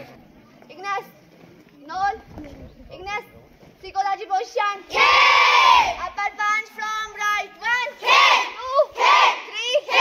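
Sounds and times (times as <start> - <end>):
girls calling out together: 4.0 - 10.0.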